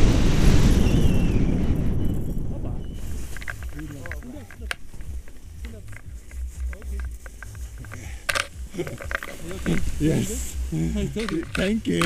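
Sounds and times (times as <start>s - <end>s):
wind buffeting microphone: 0.0s - 11.1s
harness gear clicking and rustling: 3.0s - 12.0s.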